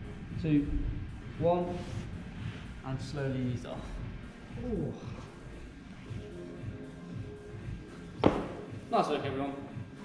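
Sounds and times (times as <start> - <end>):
music with steady beat: 0.0 - 10.0
sharp thump on rubber floor: 8.2 - 8.7.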